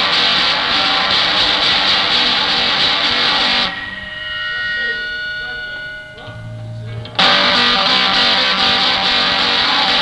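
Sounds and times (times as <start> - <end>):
punk band playing: 0.0 - 5.1, 6.2 - 10.0
guitar tones ringing: 0.0 - 10.0.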